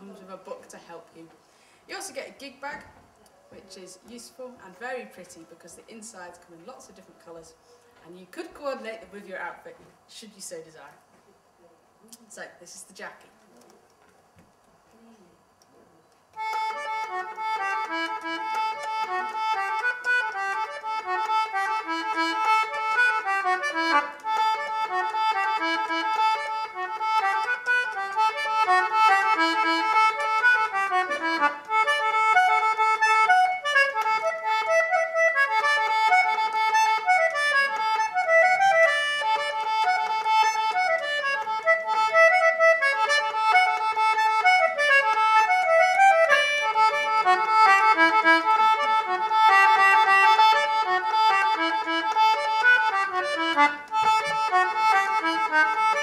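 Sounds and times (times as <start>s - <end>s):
concertina playing a tune: 16.4s - 56.0s.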